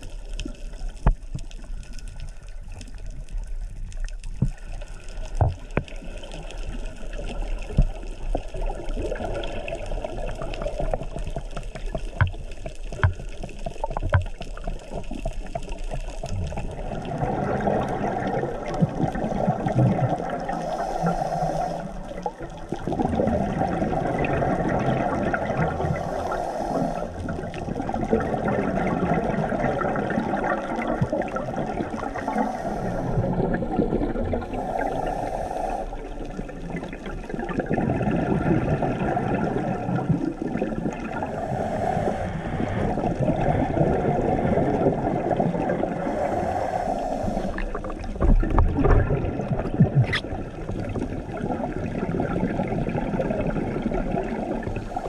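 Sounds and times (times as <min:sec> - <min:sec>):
exhaled bubbles gurgling underwater: 0:00.0 - 0:55.0
hissing regulator inhalation: 0:20.3 - 0:22.3, 0:25.7 - 0:27.4, 0:31.9 - 0:33.7, 0:34.3 - 0:36.3, 0:41.1 - 0:43.9, 0:45.8 - 0:48.1.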